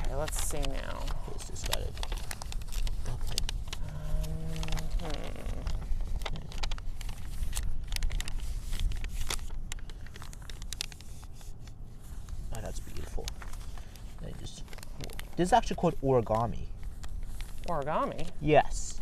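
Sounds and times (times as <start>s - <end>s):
paper crinkling and rustling: 0.0s - 19.0s.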